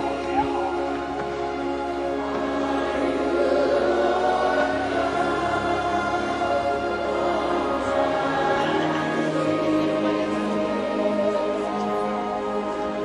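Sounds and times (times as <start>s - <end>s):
choir singing worship music: 0.0s - 13.0s.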